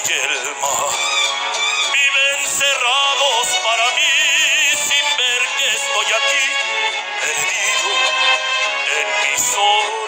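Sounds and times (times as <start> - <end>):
instrumental accompaniment: 0.0 - 10.0
man singing with vibrato: 0.0 - 10.0.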